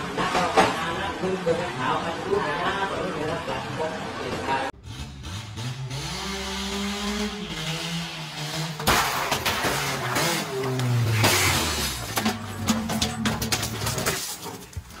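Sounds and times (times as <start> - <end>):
car engine revving: 4.8 - 13.9
car crashing: 7.0 - 15.0
breaking and clattering: 8.8 - 15.0.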